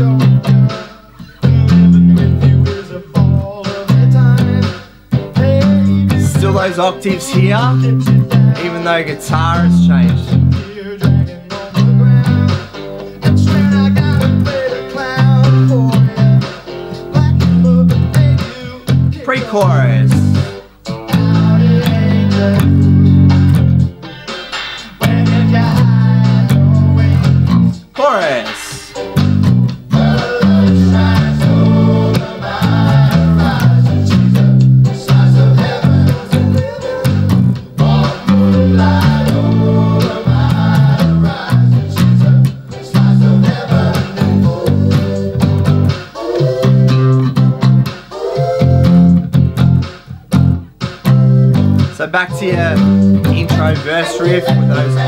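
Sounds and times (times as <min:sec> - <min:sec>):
fingerstyle electric bass line: 0:00.0 - 0:27.9, 0:28.6 - 0:55.0
song with guitar and vocals: 0:00.0 - 0:55.0.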